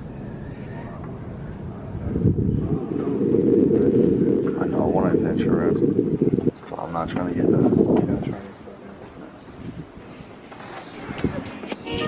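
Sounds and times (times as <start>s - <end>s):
wind buffeting microphone: 0.0s - 11.8s.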